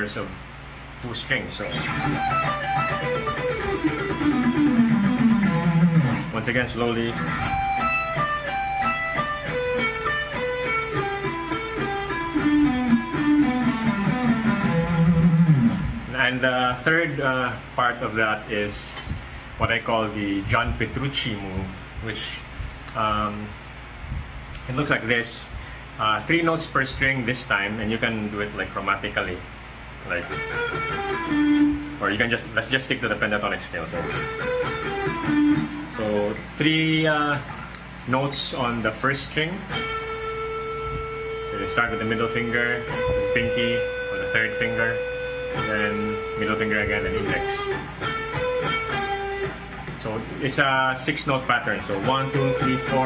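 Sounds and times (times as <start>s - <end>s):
electric guitar pentatonic run: 1.1s - 17.2s, 29.8s - 53.0s.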